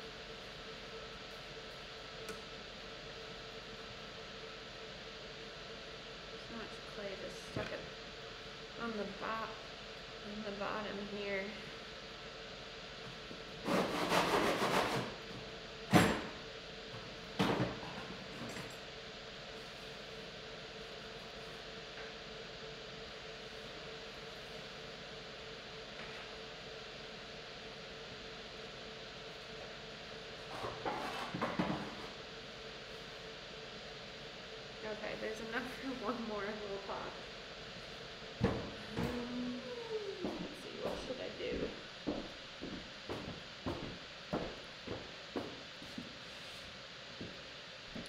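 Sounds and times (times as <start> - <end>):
pottery wheel humming: 0.0 - 48.0.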